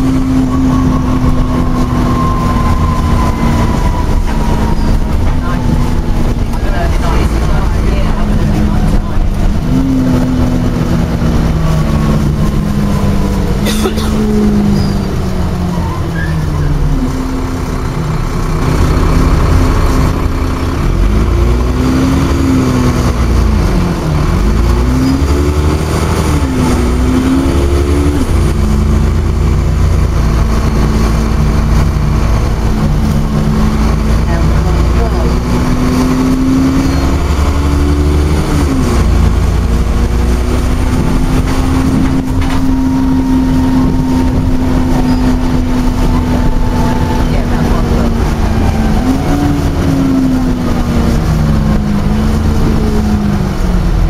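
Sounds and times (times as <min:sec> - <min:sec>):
bus engine from inside: 0:00.0 - 0:54.0.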